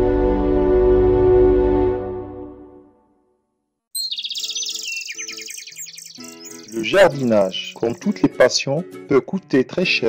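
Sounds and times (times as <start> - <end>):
birds chirping: 4.0 - 8.8
light background music: 4.3 - 10.0.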